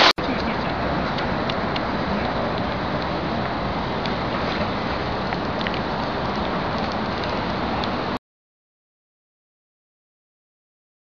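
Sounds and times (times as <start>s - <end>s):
loud rushing outdoor noise: 0.0s - 8.2s.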